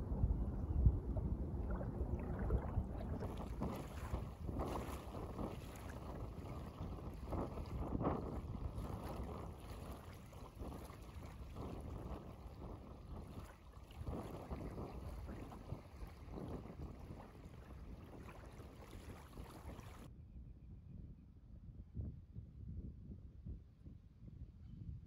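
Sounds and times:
small waves lapping on shore: 0:00.0 - 0:20.1
wind buffeting microphone: 0:00.0 - 0:20.1.

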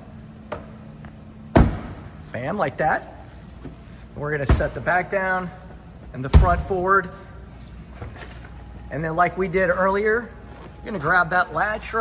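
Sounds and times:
car cover shutting with a thud: 0:01.5 - 0:02.1.

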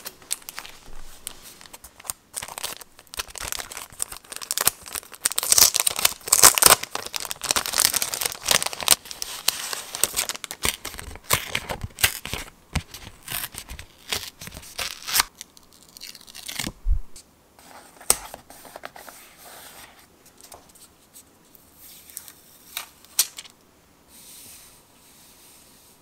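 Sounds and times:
paper crinkling and ripping: 0:00.0 - 0:16.7.

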